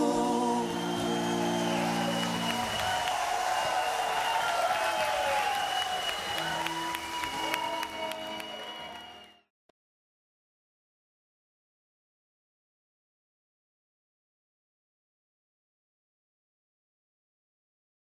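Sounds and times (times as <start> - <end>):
audience applauding and cheering: 0.0 - 9.5.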